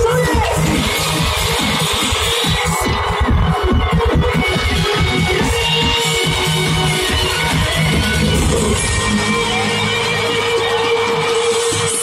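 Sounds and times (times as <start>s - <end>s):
live pop concert music: 0.0s - 12.0s.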